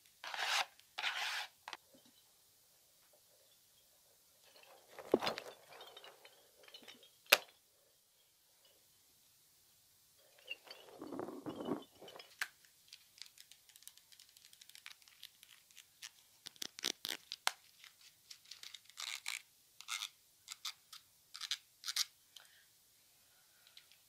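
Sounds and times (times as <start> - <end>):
rubber toy squeezed and rubbed: 13.2 - 22.1.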